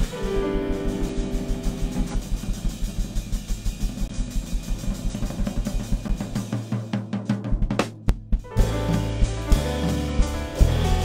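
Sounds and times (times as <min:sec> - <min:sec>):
drum kit playing: 0:00.0 - 0:11.0.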